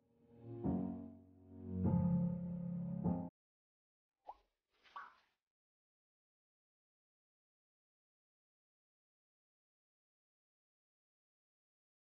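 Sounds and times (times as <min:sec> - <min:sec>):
background music: 0:00.0 - 0:03.3.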